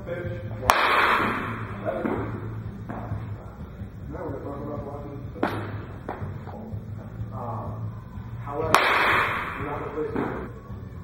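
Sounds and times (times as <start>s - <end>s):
bat cracking a baseball: 0.6s - 3.2s, 5.4s - 6.3s, 8.6s - 10.5s.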